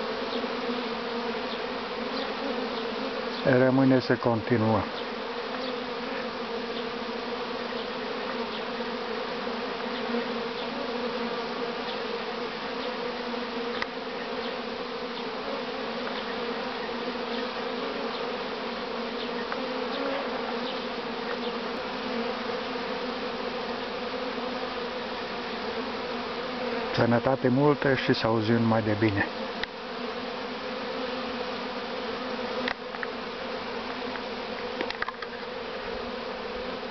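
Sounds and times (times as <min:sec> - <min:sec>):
honeybees buzzing drone: 0:00.0 - 0:36.9
single bees buzzing past: 0:00.0 - 0:36.9.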